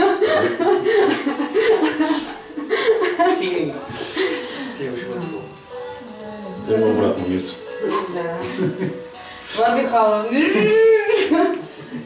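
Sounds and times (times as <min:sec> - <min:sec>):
people laughing: 0:00.0 - 0:05.0, 0:07.8 - 0:09.1, 0:10.3 - 0:12.0.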